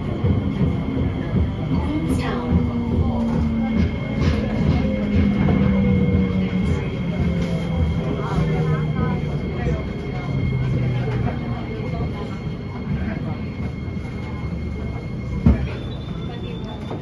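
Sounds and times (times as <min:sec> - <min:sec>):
train wheels rumbling on rail: 0:00.0 - 0:17.0.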